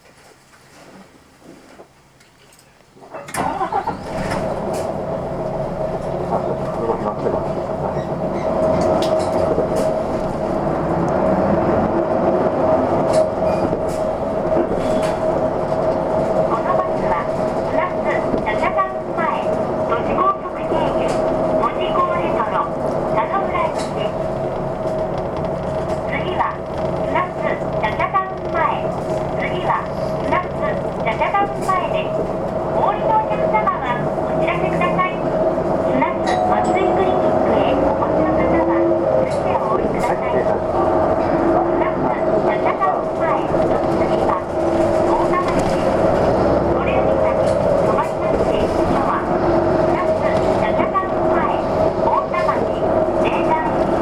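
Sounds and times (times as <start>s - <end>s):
diesel bus engine running: 3.2s - 54.0s.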